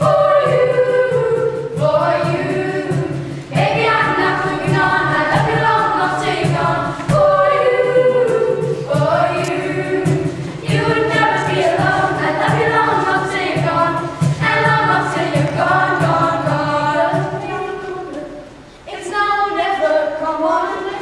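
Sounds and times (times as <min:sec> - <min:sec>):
children singing in parts: 0:00.0 - 0:21.0.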